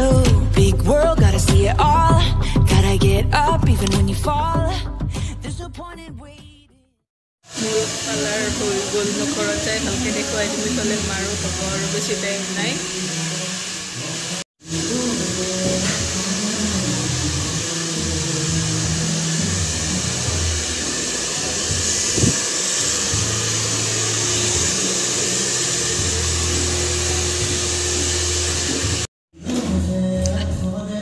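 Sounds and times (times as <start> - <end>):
background music with bass line: 0.0 - 6.8, 14.7 - 22.4, 25.5 - 31.0
hair dryer blowing: 7.4 - 29.1.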